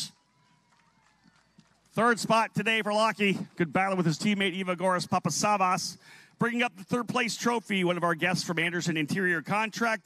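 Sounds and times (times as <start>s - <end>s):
man's voice: 2.0s - 10.0s.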